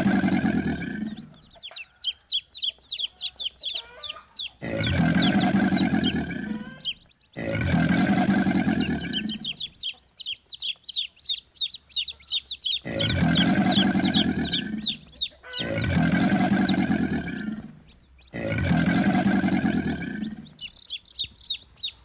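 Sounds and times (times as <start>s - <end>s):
chicks peeping: 0.0s - 22.0s.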